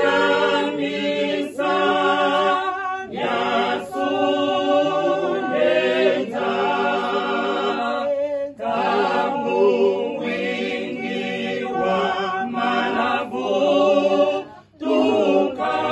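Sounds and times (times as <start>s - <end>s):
choir singing a cappella: 0.0s - 15.9s.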